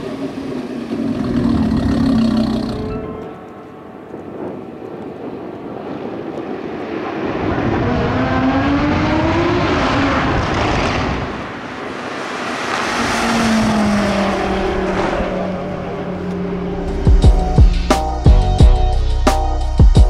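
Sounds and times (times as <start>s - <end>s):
car engine driving by: 7.7s - 18.2s.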